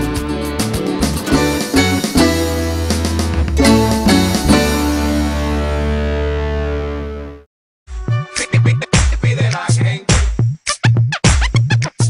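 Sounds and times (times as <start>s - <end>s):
instrumental jingle music: 0.8s - 7.3s.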